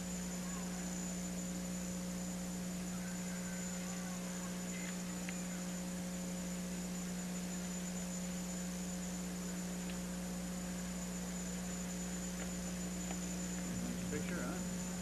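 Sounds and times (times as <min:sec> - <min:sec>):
electrical hum: 0:00.0 - 0:15.0
faint high whine: 0:00.0 - 0:15.0.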